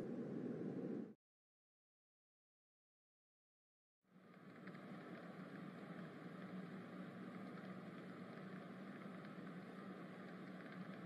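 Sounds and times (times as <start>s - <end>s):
low hum: 0.0s - 1.2s.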